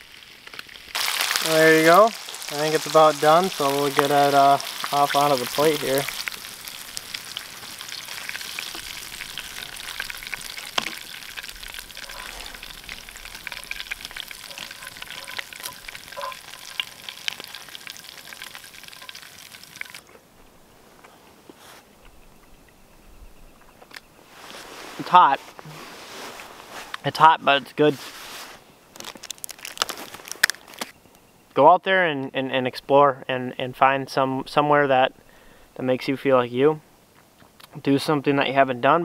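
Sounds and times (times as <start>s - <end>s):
fish sizzling in frying pan: 0.0s - 20.0s.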